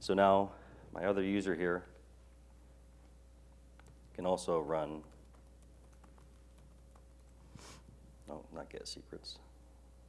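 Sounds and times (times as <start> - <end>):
low steady hum: 0.0 - 10.0
laptop keyboard typing: 4.9 - 7.5.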